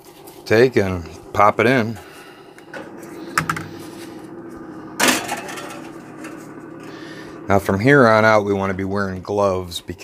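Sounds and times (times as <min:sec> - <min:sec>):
steady low hum: 0:00.0 - 0:10.0
metal pan clattering on rack: 0:05.0 - 0:05.9.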